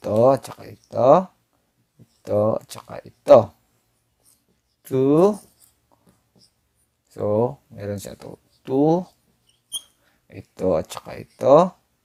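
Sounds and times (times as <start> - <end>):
person speaking: 0.0 - 1.4, 2.0 - 3.7, 4.8 - 5.7, 7.0 - 9.2, 10.3 - 11.9
marker writing on whiteboard: 3.9 - 6.9, 8.2 - 10.0.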